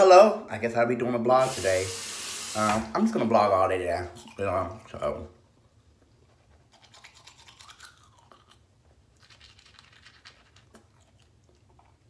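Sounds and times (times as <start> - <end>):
toothbrush scrubbing teeth: 6.3 - 12.0.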